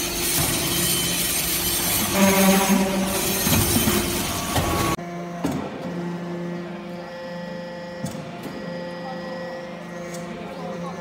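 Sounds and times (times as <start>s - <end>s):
hydraulic pump and motor hum: 0.0s - 11.0s.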